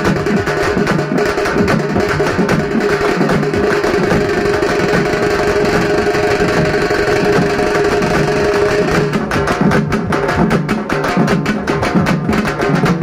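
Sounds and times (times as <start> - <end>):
fast dense drumming: 0.0 - 13.0
sharp rapid drum strokes: 0.0 - 13.0.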